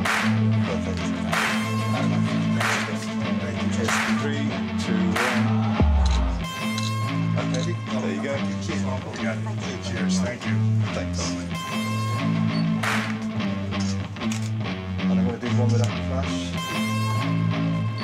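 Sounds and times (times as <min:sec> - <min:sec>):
bass line of held notes: 0:00.0 - 0:12.8
rock music with guitar: 0:00.0 - 0:18.0.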